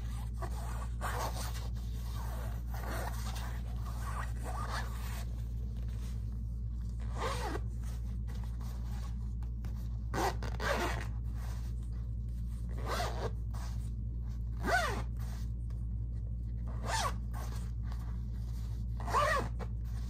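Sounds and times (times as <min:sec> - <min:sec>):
zipper on fabric pouch: 0:00.1 - 0:05.3, 0:07.0 - 0:07.7, 0:10.1 - 0:11.5, 0:12.7 - 0:13.7, 0:14.6 - 0:15.4, 0:16.7 - 0:17.7, 0:19.0 - 0:19.7.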